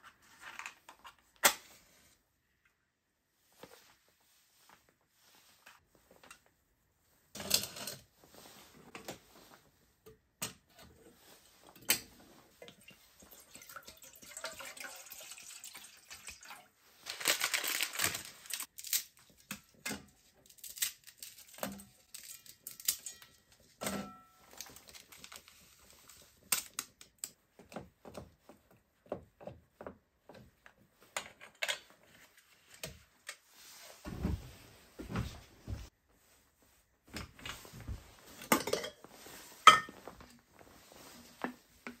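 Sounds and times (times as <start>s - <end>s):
pouring and rustling into pot: 12.3s - 18.7s.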